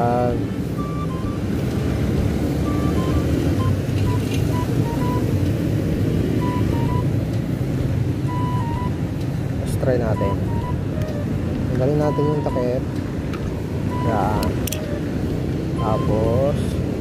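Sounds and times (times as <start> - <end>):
street traffic rumble: 0.0 - 17.0
simple tune of single notes: 0.8 - 1.6, 2.6 - 5.4, 6.4 - 7.2, 8.2 - 9.1, 10.0 - 15.1, 15.7 - 16.4.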